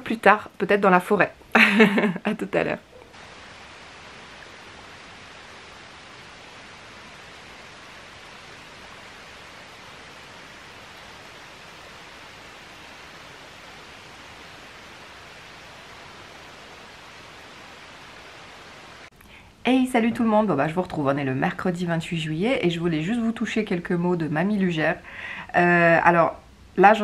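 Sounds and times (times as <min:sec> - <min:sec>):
steady hiss: 0:02.9 - 0:20.4.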